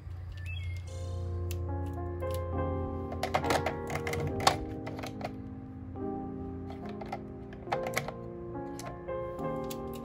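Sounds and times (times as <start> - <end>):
background music: 0.4 - 10.0
pens tapping plastic organizer: 3.1 - 5.3, 6.7 - 8.2.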